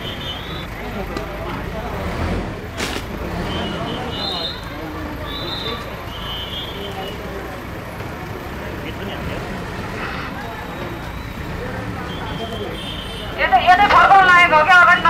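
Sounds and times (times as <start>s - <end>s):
diesel engine rumble: 0.0s - 15.0s
faint voices: 0.0s - 15.0s.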